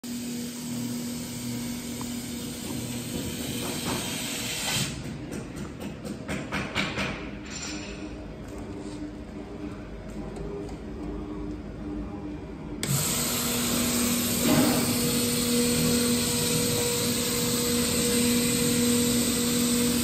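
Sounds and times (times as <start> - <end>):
laser cutting machine hissing: 12.8 - 20.0.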